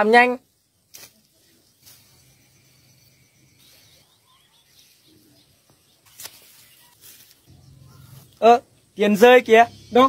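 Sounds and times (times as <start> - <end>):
faint bird chirps: 0.4 - 10.0.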